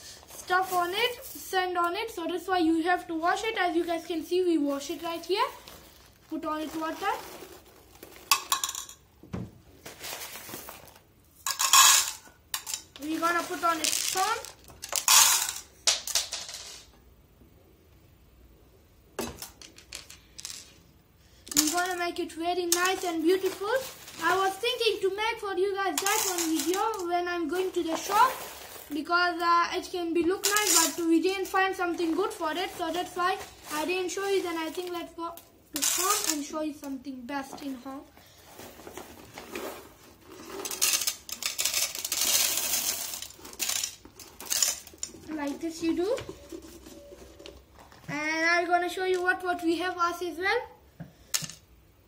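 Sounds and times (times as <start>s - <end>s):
pebbles clattering on glass: 6.5s - 9.1s, 11.4s - 16.9s, 21.5s - 22.0s, 22.7s - 24.6s, 25.9s - 29.0s, 30.4s - 35.1s, 35.7s - 36.5s, 40.3s - 47.7s.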